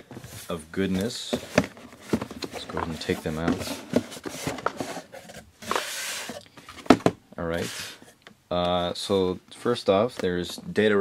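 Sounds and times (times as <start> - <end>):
boxes rustling against cardboard: 0.0 - 8.2
boxes knocking on desk: 6.8 - 7.2.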